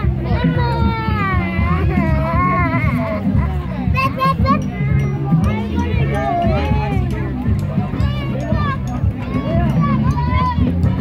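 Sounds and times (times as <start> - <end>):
background music: 0.0 - 11.0
children's voices chattering: 0.0 - 11.0.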